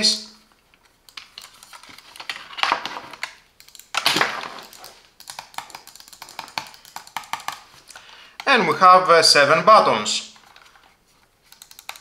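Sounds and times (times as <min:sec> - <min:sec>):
mouse clicks and taps: 0:04.6 - 0:07.7.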